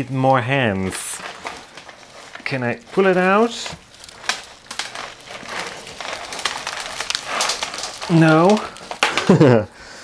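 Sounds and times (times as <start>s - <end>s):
plastic pot crackling and crinkling: 0.0s - 10.0s.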